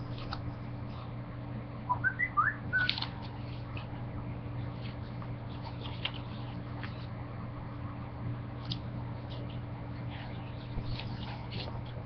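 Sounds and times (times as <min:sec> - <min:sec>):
short whistled chirps: 0:01.9 - 0:03.0.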